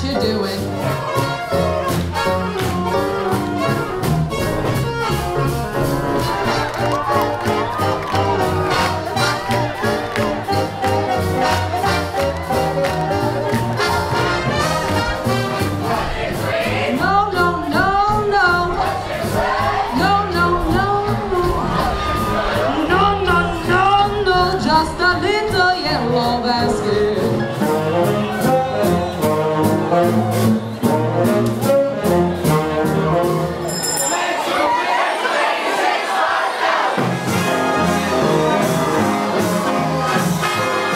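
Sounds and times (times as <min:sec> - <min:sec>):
swing big band playing: 0:00.0 - 0:40.9.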